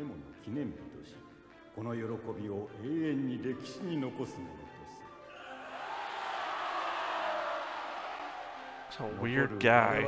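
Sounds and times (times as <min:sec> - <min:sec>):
large crowd cheering: 0:05.3 - 0:10.0.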